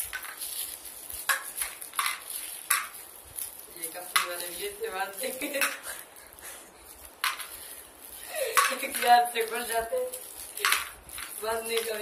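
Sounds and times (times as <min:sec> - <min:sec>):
plastic wrappers crinkling: 0:00.0 - 0:12.0.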